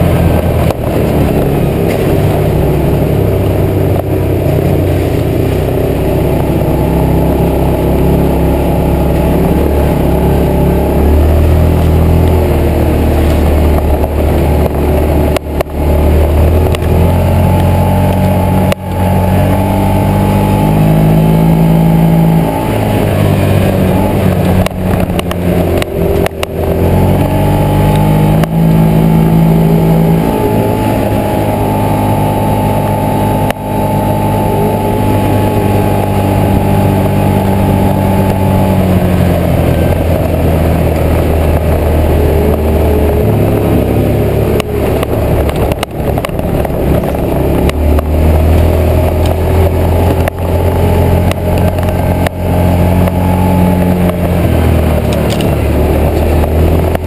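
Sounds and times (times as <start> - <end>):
vehicle engine under load: 0.0 - 57.0.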